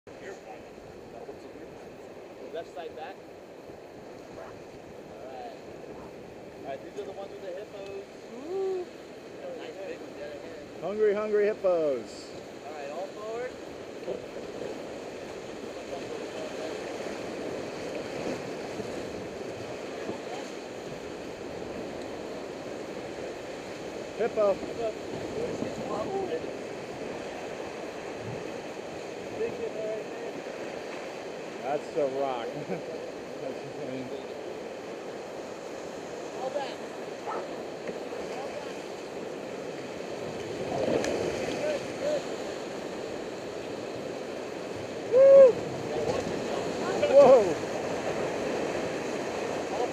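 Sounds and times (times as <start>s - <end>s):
river rapids roaring: 0.1s - 49.9s
rushing whitewater: 0.1s - 49.9s.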